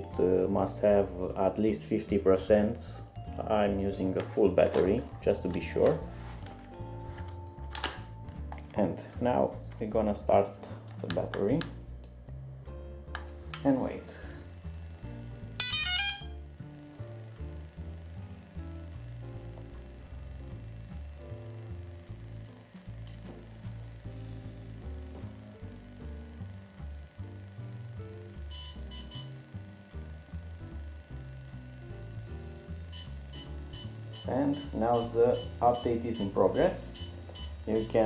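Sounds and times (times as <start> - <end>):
background music with steady beat: 0.0 - 38.0
drone short beeps: 15.6 - 16.4, 28.5 - 29.4, 32.9 - 38.0
rapid trill of high tones: 15.6 - 16.4.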